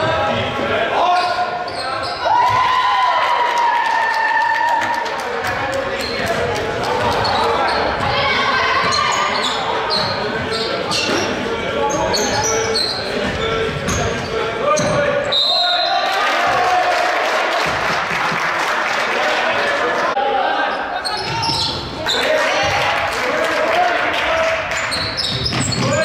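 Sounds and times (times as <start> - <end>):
sneakers squeaking on hardwood: 6.0 - 15.3, 21.0 - 22.2, 24.8 - 26.0
referee whistle: 15.2 - 16.0.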